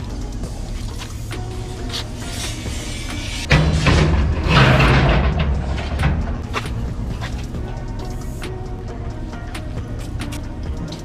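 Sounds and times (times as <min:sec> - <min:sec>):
background music with beat: 0:00.0 - 0:11.0
steel rebar scraping concrete: 0:00.8 - 0:08.4
metal rebar clinks: 0:02.1 - 0:11.0.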